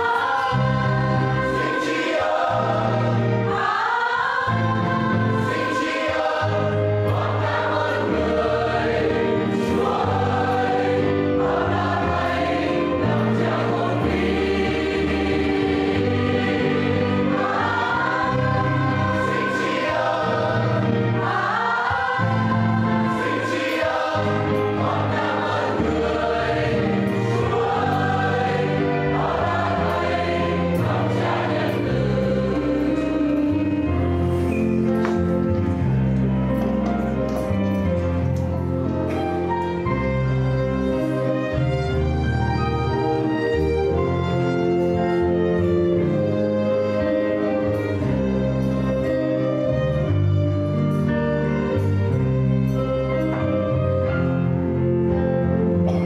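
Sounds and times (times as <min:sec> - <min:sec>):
church choir singing a hymn: 0:00.0 - 0:37.2, 0:37.9 - 0:56.0.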